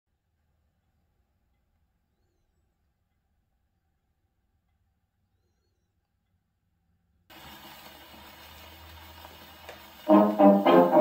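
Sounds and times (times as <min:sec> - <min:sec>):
record surface hiss: 0:07.3 - 0:11.0.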